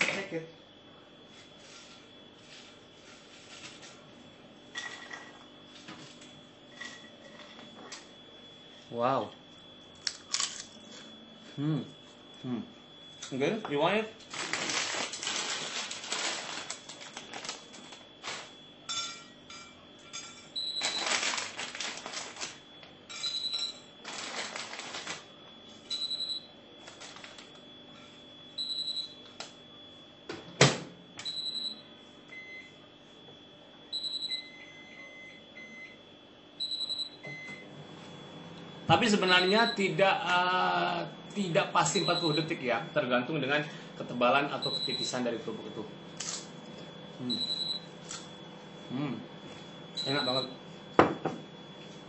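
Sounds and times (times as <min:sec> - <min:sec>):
crackers rustling and clattering: 0:14.2 - 0:18.6, 0:20.8 - 0:23.0, 0:24.0 - 0:25.3, 0:26.8 - 0:27.6.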